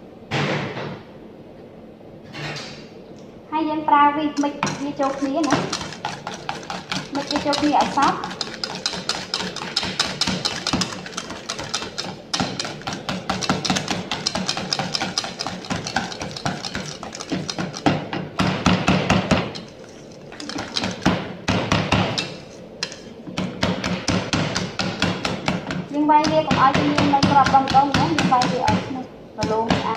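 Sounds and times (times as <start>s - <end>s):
whisk clinking in metal bowl: 4.4s - 23.1s.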